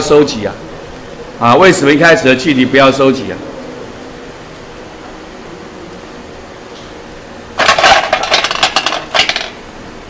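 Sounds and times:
classroom room noise hiss and hum: 0:00.0 - 0:10.0.

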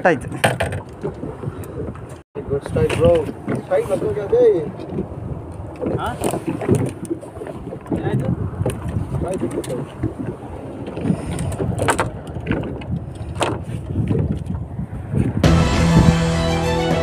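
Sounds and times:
wind rumble on microphone: 0:00.0 - 0:16.4
men speaking: 0:02.4 - 0:04.9, 0:05.9 - 0:06.4, 0:09.1 - 0:09.9.

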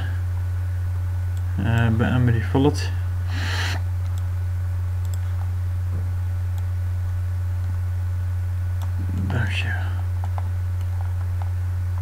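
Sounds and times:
low electrical hum: 0:00.0 - 0:12.0
mouse clicks: 0:05.0 - 0:05.2
breathy whisper: 0:09.0 - 0:10.1.

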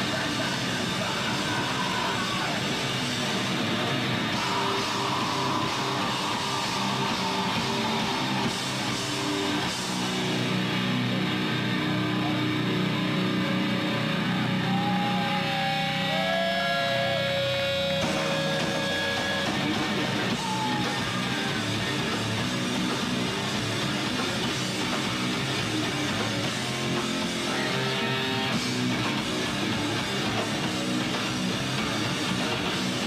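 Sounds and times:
drums and cymbals: 0:00.0 - 0:11.2, 0:17.7 - 0:33.0
bass guitar: 0:00.0 - 0:33.0
distorted electric guitar: 0:00.0 - 0:33.0.

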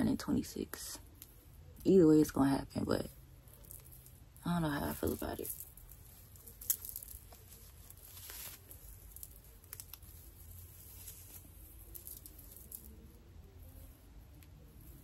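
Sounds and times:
fingers rustling through hair: 0:00.0 - 0:15.0.

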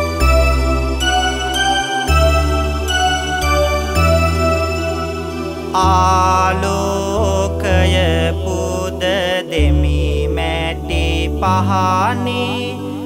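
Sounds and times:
keyboard accompaniment with bass: 0:00.0 - 0:13.0
man chanting melodically: 0:05.7 - 0:13.0.

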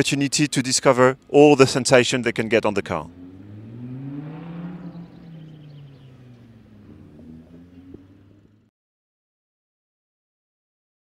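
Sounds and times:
car engine running at low revs: 0:00.3 - 0:08.7.

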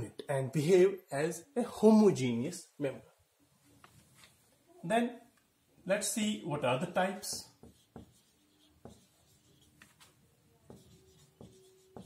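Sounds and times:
marker squeaking: 0:07.2 - 0:12.0
marker tapping on whiteboard: 0:07.2 - 0:12.0.

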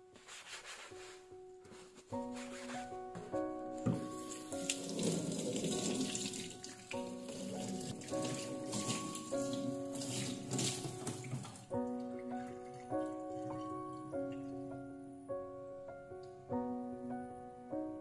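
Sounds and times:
background music: 0:00.0 - 0:18.0
hand rubbing cutting board: 0:00.2 - 0:04.0
tap water running into a sink: 0:03.8 - 0:13.7.

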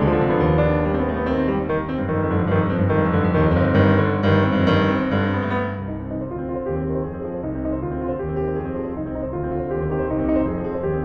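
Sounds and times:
solo piano: 0:00.0 - 0:11.0.

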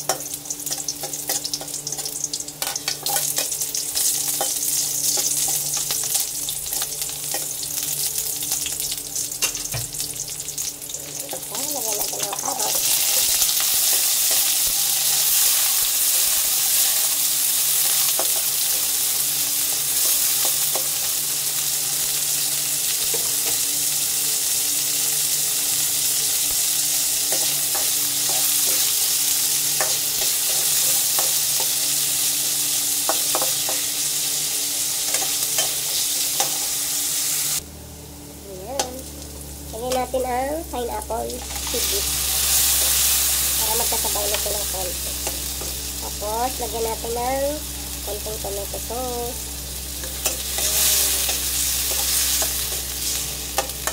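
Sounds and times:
vegetables sizzling in hot oil: 0:00.0 - 0:37.6, 0:38.2 - 0:53.9.

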